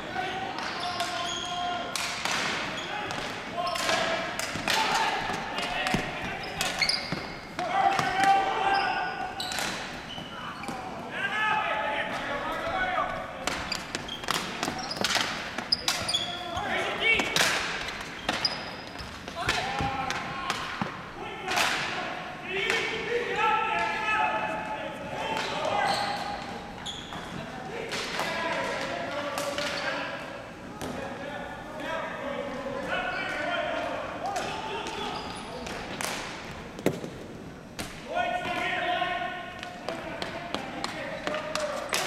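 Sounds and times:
players calling out: 0:00.0 - 0:35.8
hockey sticks clacking on ball: 0:00.5 - 0:08.8, 0:09.4 - 0:10.9, 0:12.1 - 0:22.0, 0:22.6 - 0:23.0, 0:25.2 - 0:30.0, 0:33.2 - 0:38.6, 0:39.5 - 0:42.0.

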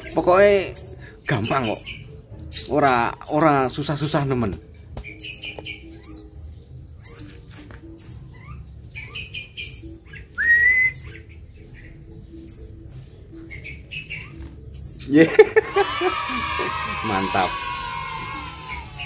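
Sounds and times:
bird chirping: 0:00.0 - 0:19.0
man laughing: 0:15.2 - 0:16.8.

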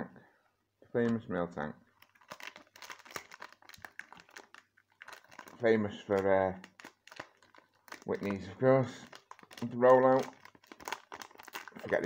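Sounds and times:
foil pack crinkling: 0:02.0 - 0:12.0.

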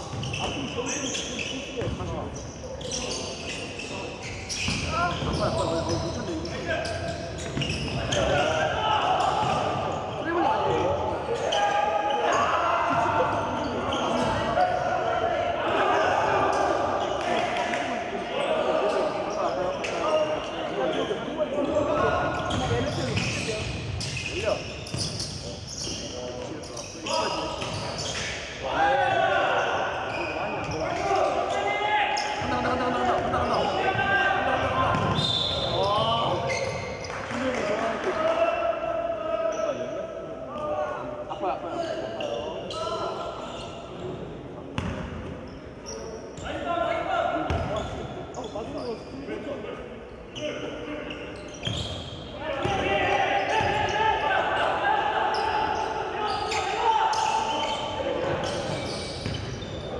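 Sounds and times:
players calling out: 0:00.0 - 0:44.2, 0:50.3 - 0:59.9.

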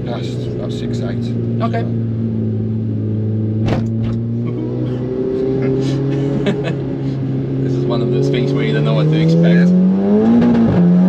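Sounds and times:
van engine revving: 0:00.0 - 0:11.0.

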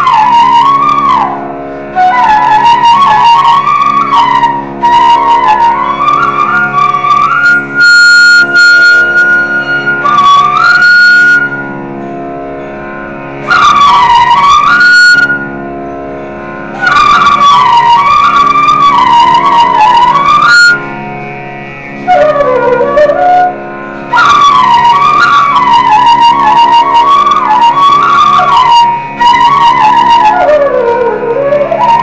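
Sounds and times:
flute playing: 0:00.0 - 0:32.0
steady drone: 0:00.0 - 0:32.0.

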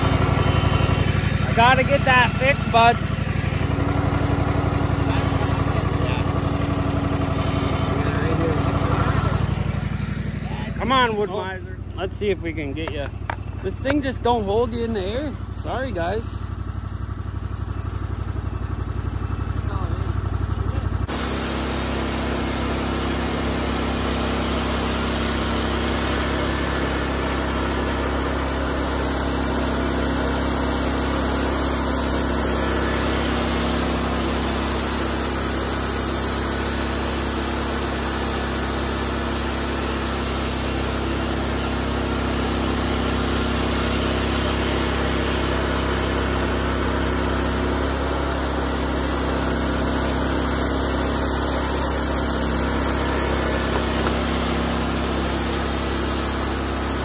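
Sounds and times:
band sawmill running: 0:00.0 - 0:57.0.

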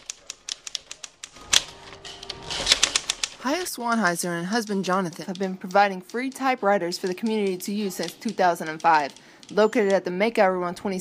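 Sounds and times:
typewriter key strikes: 0:00.0 - 0:03.6.

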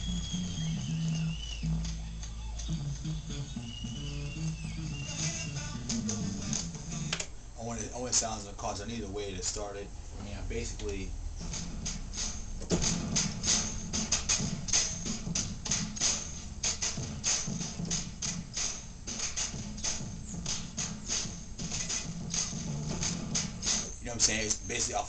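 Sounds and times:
hip-hop drum beat: 0:00.0 - 0:07.2, 0:10.4 - 0:25.0.

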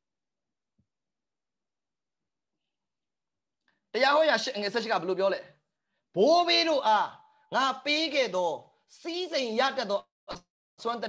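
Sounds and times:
man preaching: 0:03.9 - 0:10.1, 0:10.8 - 0:11.0.

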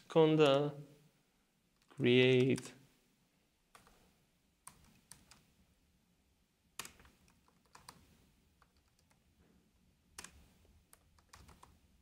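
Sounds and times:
keyboard keystrokes: 0:06.8 - 0:08.0, 0:10.2 - 0:11.8.

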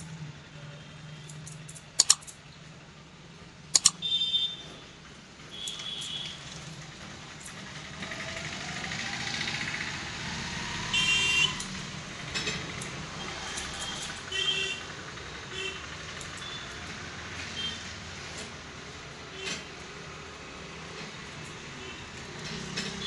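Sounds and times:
scissors snipping hair: 0:02.0 - 0:02.3, 0:03.8 - 0:04.0
vehicle horn beeps: 0:03.9 - 0:04.8, 0:05.5 - 0:06.5, 0:10.9 - 0:11.7, 0:13.2 - 0:14.9, 0:17.6 - 0:17.9.

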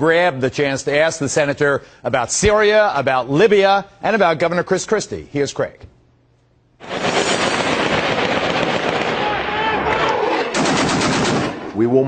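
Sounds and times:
machine-gun fire: 0:06.8 - 0:11.8.

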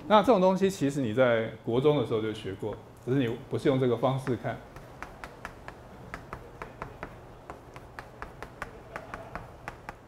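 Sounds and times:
chalk tapping on blackboard: 0:04.2 - 0:10.0.

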